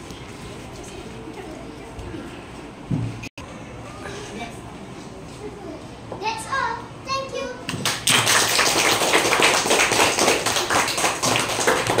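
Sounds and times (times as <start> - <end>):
children clapping: 7.7 - 12.0.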